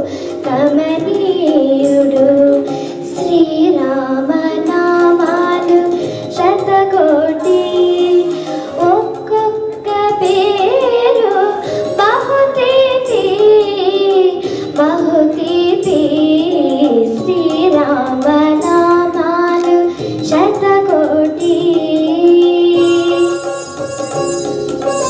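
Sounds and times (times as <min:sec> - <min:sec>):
girl singing into microphone: 0:00.0 - 0:25.0.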